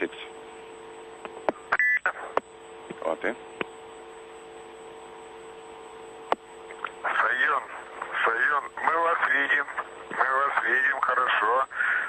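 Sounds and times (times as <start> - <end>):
voice over narrow-band radio: 7.0 - 12.0.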